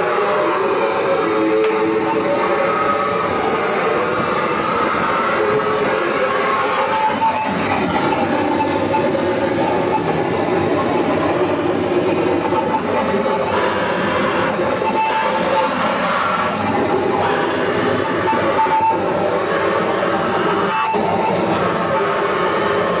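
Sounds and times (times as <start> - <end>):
wall of dense noise: 0.0 - 23.0.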